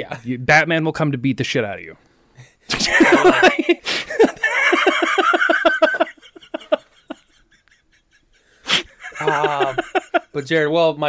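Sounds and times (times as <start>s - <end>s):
laughter in quick bursts: 2.7s - 10.4s.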